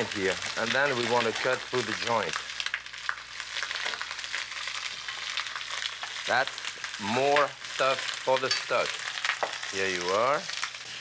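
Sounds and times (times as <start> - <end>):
meat sizzling in a frying pan: 0.0 - 11.0.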